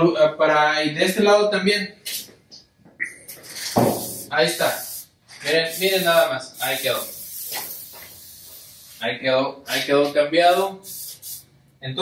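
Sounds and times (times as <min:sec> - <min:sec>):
aerosol spray hissing: 0:03.6 - 0:09.1, 0:10.5 - 0:11.5.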